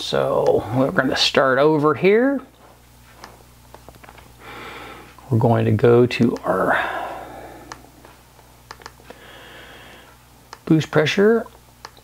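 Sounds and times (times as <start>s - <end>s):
steady low hum: 0.0s - 12.0s
faint computer mouse clicks: 8.7s - 9.0s.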